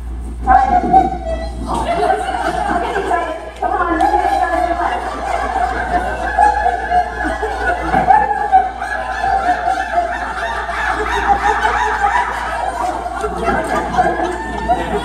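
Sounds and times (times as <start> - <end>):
crowd laughing in high voices: 0.6 - 15.0.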